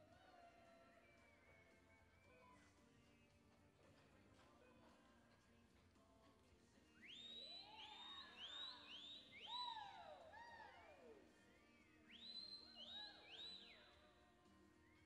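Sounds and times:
spectators whistling and whooping: 0.1 - 2.6, 7.0 - 15.0.

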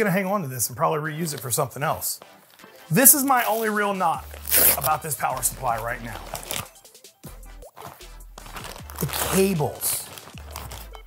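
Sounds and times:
cloth bag rustling: 2.4 - 6.8, 7.6 - 11.0
plastic-wrapped cables crinkling: 2.5 - 6.8, 7.7 - 11.0.

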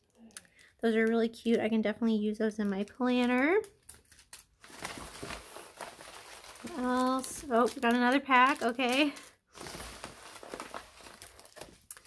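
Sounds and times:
plastic packaging crinkling: 2.7 - 12.0.

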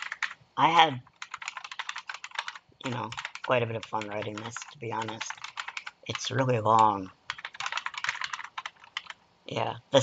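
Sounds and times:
keyboard typing: 0.0 - 0.4, 1.0 - 9.2.

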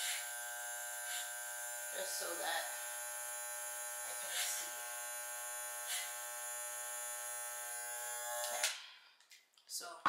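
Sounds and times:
clipper blades rasping through hair: 0.0 - 8.8
electric hair clippers buzzing: 0.0 - 8.8.

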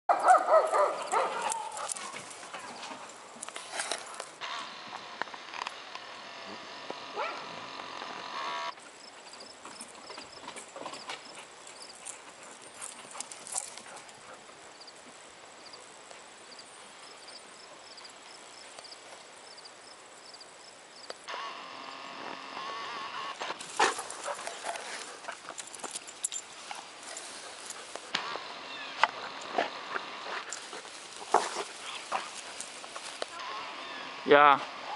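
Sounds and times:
puppy barking: 0.1 - 2.1, 7.1 - 7.5
dogs playing clicks and scuffles: 0.2 - 4.4, 8.8 - 15.2, 23.4 - 28.2, 29.0 - 33.4.

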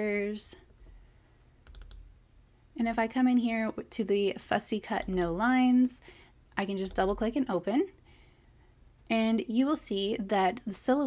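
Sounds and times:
computer mouse clicks: 1.6 - 2.1.

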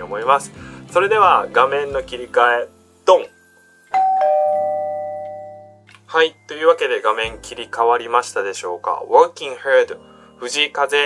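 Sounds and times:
two-note ding-dong chime: 3.9 - 5.9.

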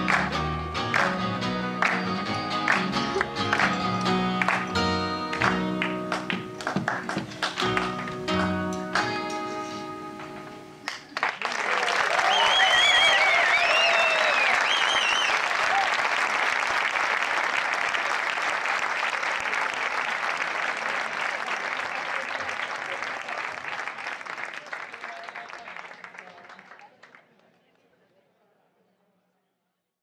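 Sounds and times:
audience applauding: 0.0 - 9.3, 10.8 - 27.6
cheers: 11.4 - 27.0.

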